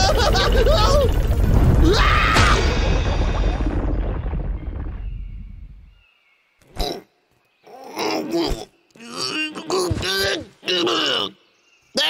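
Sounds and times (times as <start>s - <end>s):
cartoon rock slide rumble: 0.0s - 5.9s.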